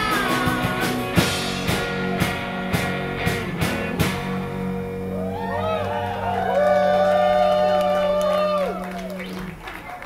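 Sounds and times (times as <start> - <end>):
rock band holding a chord: 0.0 - 8.9
bending lead guitar notes: 0.0 - 9.0.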